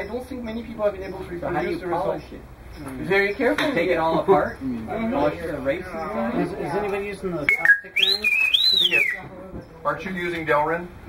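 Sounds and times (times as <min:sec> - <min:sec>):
robot electronic whistles: 0:07.5 - 0:09.2.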